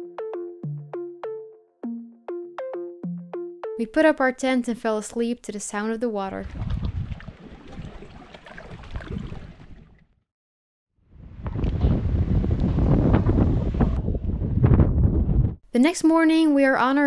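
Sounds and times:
wind rumbling on microphone: 6.4s - 10.1s, 11.1s - 15.6s.

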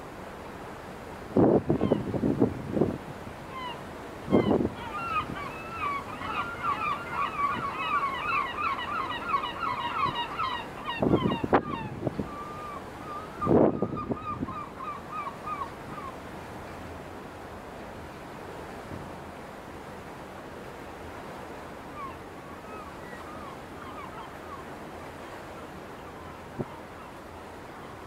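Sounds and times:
wind buffeting microphone: 1.3s - 3.2s, 10.9s - 12.3s, 13.4s - 14.6s
flock of birds chattering: 3.6s - 15.7s.

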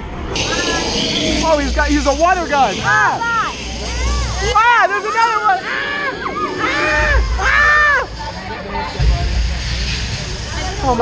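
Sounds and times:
deep rumble: 0.0s - 11.0s
faint voices: 0.3s - 11.0s.

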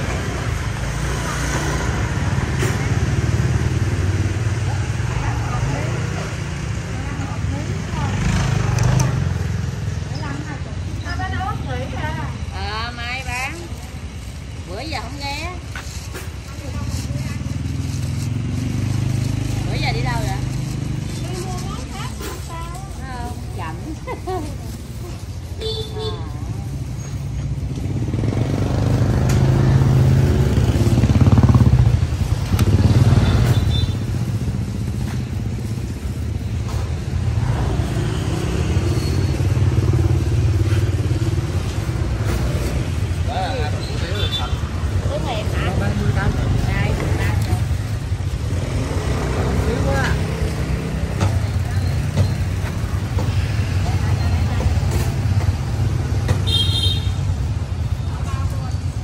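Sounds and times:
motorbikes passing: 0.0s - 59.0s
people talking: 4.7s - 9.3s, 10.0s - 14.0s, 16.4s - 17.8s, 19.4s - 26.7s, 43.2s - 47.9s, 51.0s - 55.3s, 58.0s - 59.0s.

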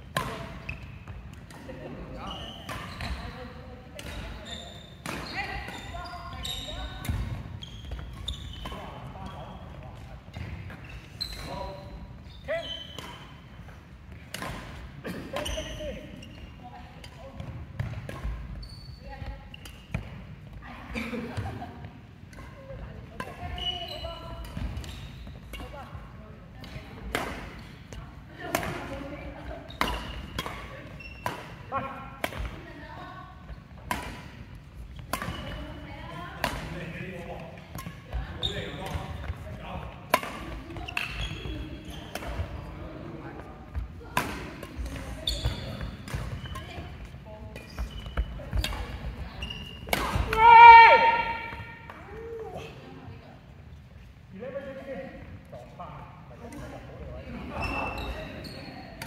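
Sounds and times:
rackets hitting shuttlecock: 0.1s - 1.8s, 5.0s - 5.9s, 12.9s - 15.5s, 26.6s - 27.8s, 28.4s - 32.6s, 33.8s - 35.8s, 36.4s - 37.0s, 37.6s - 42.7s, 43.4s - 52.0s.

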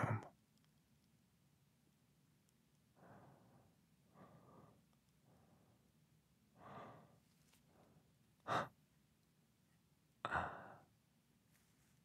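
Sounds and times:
man breathing: 3.0s - 8.8s, 10.3s - 11.0s.

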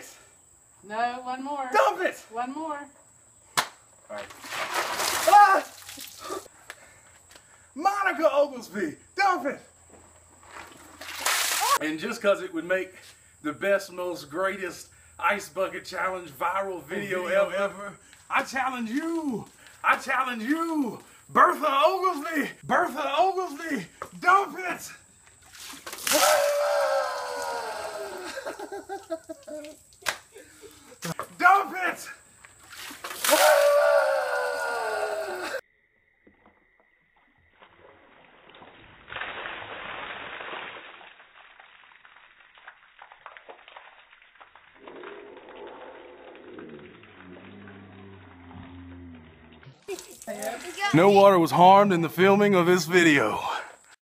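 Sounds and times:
man yelling: 1.7s - 2.3s, 5.2s - 5.8s, 16.8s - 25.0s, 26.1s - 28.6s, 31.2s - 32.2s, 33.3s - 35.6s, 50.8s - 53.7s
ice water splashing: 4.2s - 6.5s, 10.4s - 11.8s, 25.4s - 31.9s, 32.6s - 33.9s, 37.6s - 48.6s, 49.6s - 51.3s.

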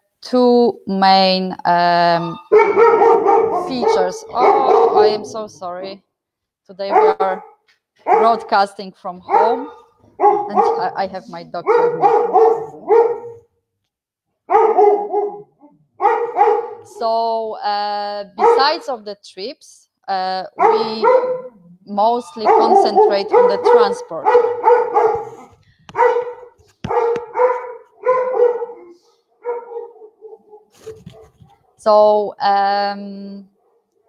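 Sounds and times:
dog barking: 2.4s - 5.5s, 6.9s - 8.5s, 9.3s - 13.5s, 14.5s - 16.9s, 18.4s - 18.8s, 20.5s - 21.6s, 22.4s - 31.8s.

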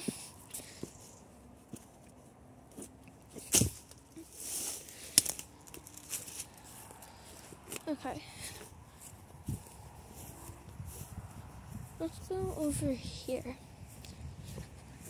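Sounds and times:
leaves and twigs crunching underfoot: 0.1s - 15.0s
foliage brushing: 0.2s - 15.0s.

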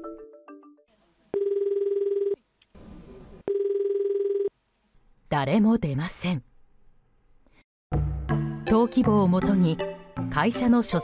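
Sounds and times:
telephone ringback tone: 1.4s - 2.4s, 3.5s - 4.5s.

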